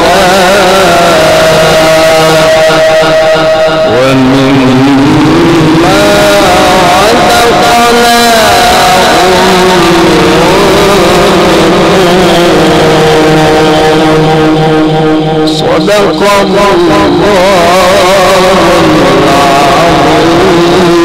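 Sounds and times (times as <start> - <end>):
man reciting melodically: 0.0 - 21.0.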